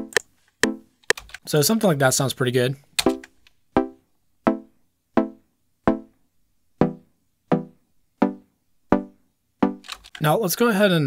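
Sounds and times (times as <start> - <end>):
plucky synth chords: 0.0 - 0.9, 3.1 - 6.1, 6.8 - 9.8.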